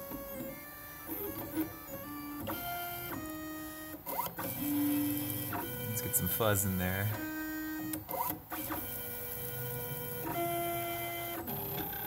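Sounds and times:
stepper motors whining: 0.0s - 11.0s.

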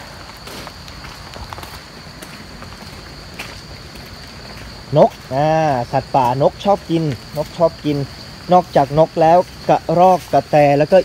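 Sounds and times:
high-pitched insect drone: 0.0s - 11.0s
man speaking: 4.9s - 11.0s.

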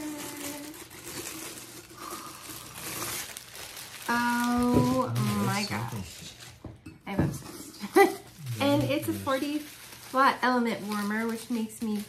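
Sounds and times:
plastic bag crinkling: 0.0s - 6.7s, 7.9s - 12.0s.

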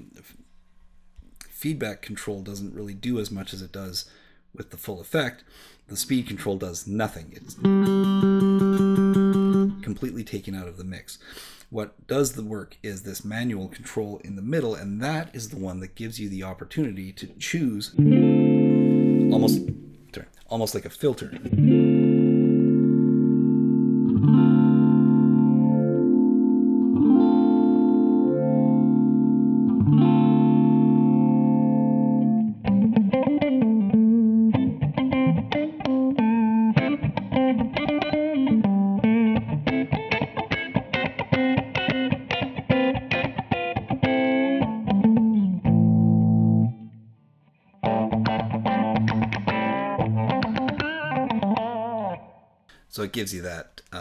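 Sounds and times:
filtered electric guitar: 7.5s - 9.8s, 18.0s - 20.1s, 21.3s - 52.4s.

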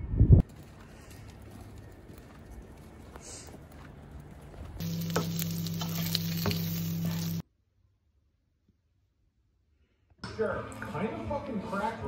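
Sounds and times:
low hum: 3.9s - 7.4s
food sizzling in a pan: 4.8s - 7.4s.

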